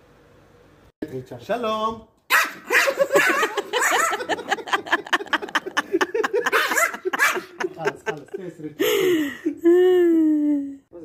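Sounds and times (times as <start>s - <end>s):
small dog yapping: 2.3s - 4.2s.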